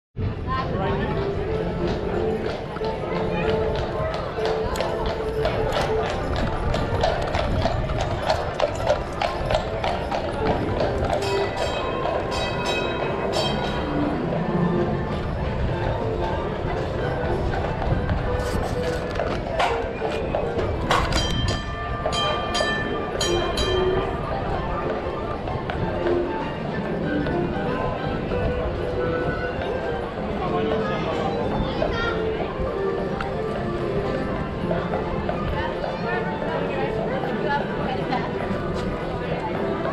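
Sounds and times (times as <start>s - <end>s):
crowd chatter: 0.2s - 39.9s
streetcar running on track: 0.2s - 39.9s
background music: 0.3s - 39.9s
horse hooves clip-clopping: 1.2s - 26.2s.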